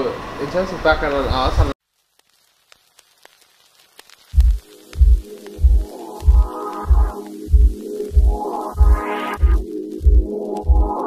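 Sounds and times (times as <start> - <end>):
faint scattered ticks: 1.9 - 8.2
electronic background music: 4.4 - 11.0.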